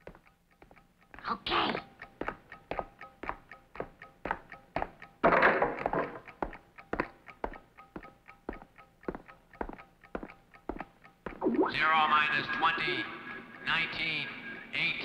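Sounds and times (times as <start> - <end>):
plucked tapping beat: 0.0 - 11.9.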